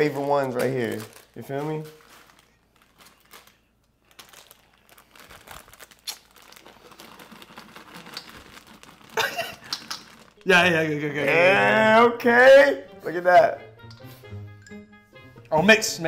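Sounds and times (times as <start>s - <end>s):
plastic snack bag crinkling: 0.0s - 10.8s.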